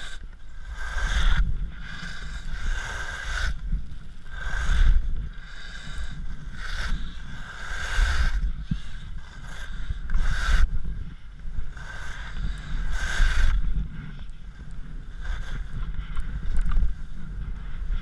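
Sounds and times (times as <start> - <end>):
wind rumbling on microphone: 0.0 - 18.0.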